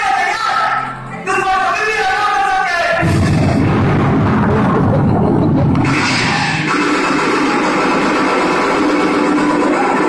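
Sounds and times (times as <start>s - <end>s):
bass-heavy music over loudspeakers: 2.8s - 10.0s
steady noisy rush: 3.0s - 10.0s.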